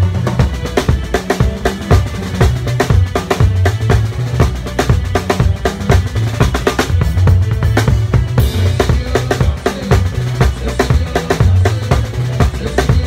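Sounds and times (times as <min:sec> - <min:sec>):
drum kit playing: 0:00.0 - 0:13.0
held bass notes: 0:00.0 - 0:13.0
other band instruments: 0:00.0 - 0:13.0.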